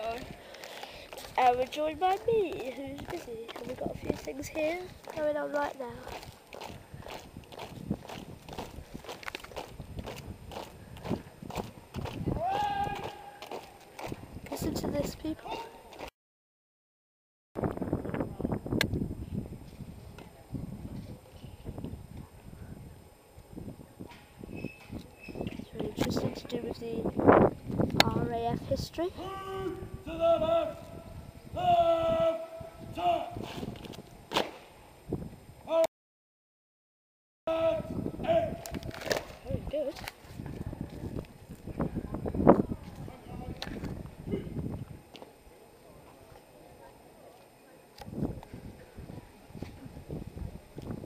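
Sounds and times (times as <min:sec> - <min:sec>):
boots marching on concrete: 0:00.0 - 0:14.3
long shouted call: 0:12.4 - 0:13.6, 0:29.2 - 0:33.5, 0:37.5 - 0:38.8
sharp crack: 0:34.3 - 0:34.7, 0:38.6 - 0:39.4.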